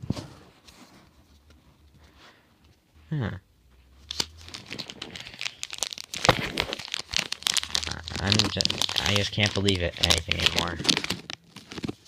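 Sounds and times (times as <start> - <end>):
foil pack crinkling and tearing: 4.1 - 12.0.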